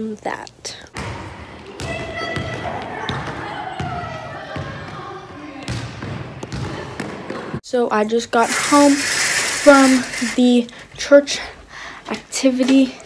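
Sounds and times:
indistinct voices echoing: 0:01.1 - 0:07.6.

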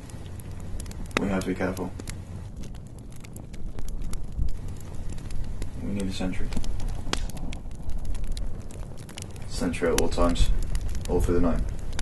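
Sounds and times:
campfire crackling and popping: 0:00.0 - 0:12.0
wind rumble on microphone: 0:00.0 - 0:12.0.

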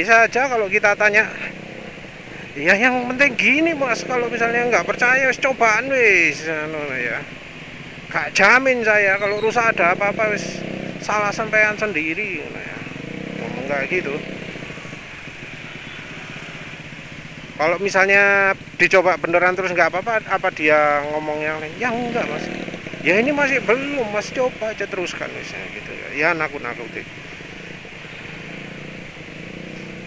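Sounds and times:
motor scooter engines: 0:00.0 - 0:30.0
road and traffic noise: 0:00.0 - 0:30.0.

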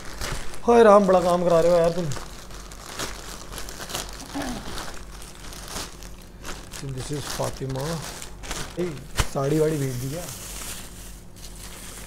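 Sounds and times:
plastic and paper crinkling: 0:00.0 - 0:12.0.

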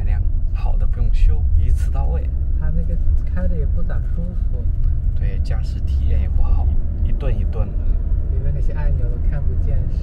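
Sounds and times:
car cabin engine and road rumble: 0:00.0 - 0:10.0
man talking: 0:00.0 - 0:10.0.

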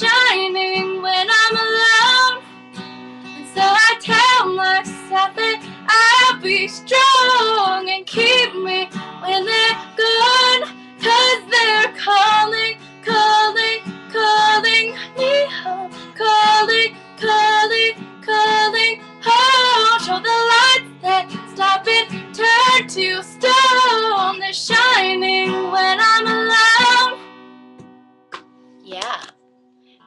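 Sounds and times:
woman singing a pop ballad: 0:00.0 - 0:27.2
strummed guitar chords: 0:00.0 - 0:29.7.

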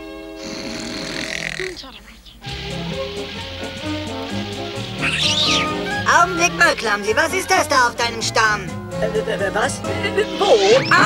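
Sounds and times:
cartoon snore: 0:00.4 - 0:01.8
light music with bouncy bass: 0:02.4 - 0:11.0.

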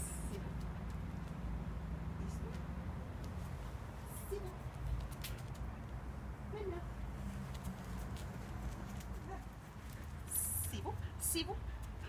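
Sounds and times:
dog trotting on asphalt: 0:07.4 - 0:10.3.

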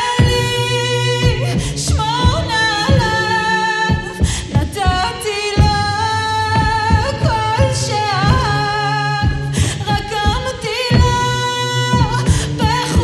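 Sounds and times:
deep thumps: 0:00.0 - 0:13.0
woman singing a cappella: 0:00.0 - 0:13.0.

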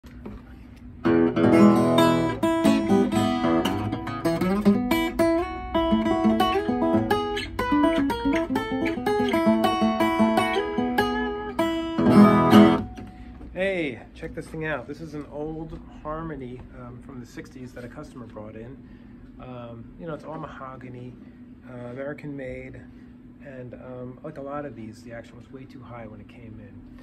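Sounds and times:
acoustic guitar strumming and picking: 0:01.0 - 0:13.4.

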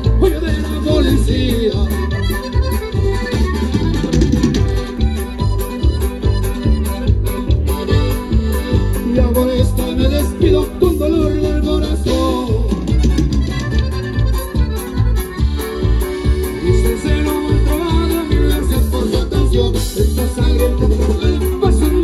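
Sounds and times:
live band dance music: 0:00.0 - 0:22.0.

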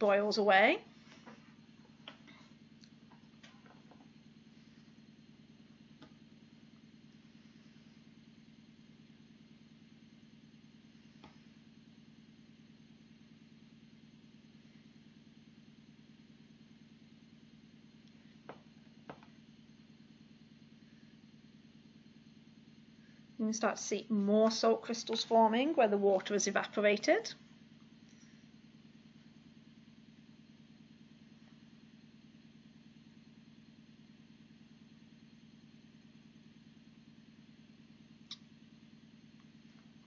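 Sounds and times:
faint low hum: 0:00.0 - 0:40.0.

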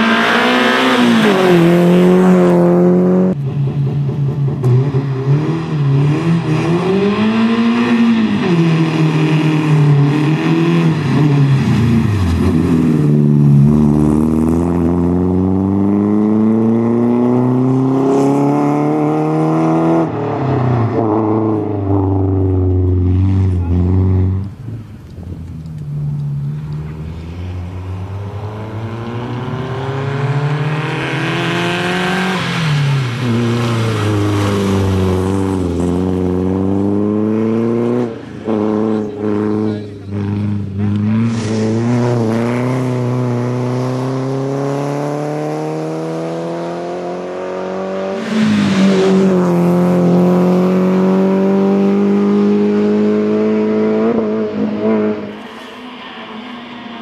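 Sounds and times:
rally car engine revving: 0:00.0 - 0:24.7, 0:25.4 - 0:57.0.

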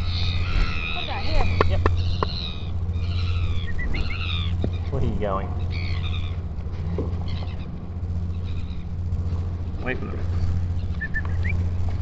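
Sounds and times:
albatross chick calling: 0:00.0 - 0:05.0, 0:10.8 - 0:11.6
steady low hum: 0:00.0 - 0:12.0.

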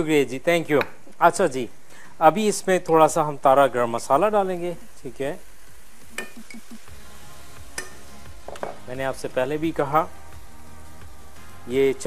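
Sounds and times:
meat sizzling in a frying pan: 0:01.4 - 0:12.0.

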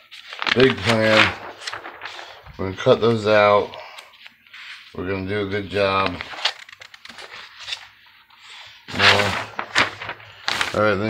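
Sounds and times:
paper sheets rustling: 0:00.0 - 0:11.0.

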